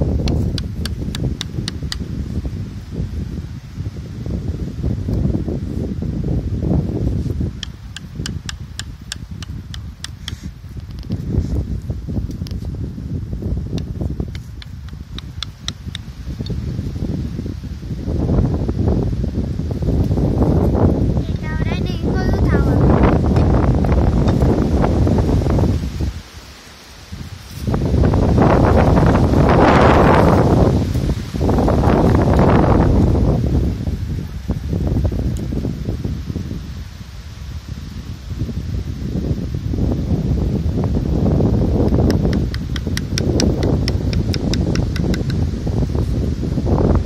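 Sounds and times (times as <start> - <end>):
wind buffeting microphone: 0.0 - 47.0.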